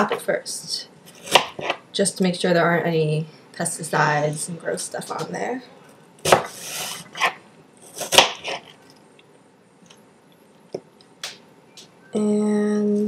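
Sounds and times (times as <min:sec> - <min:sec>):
knife slicing apple: 0:01.1 - 0:01.8, 0:06.2 - 0:08.7.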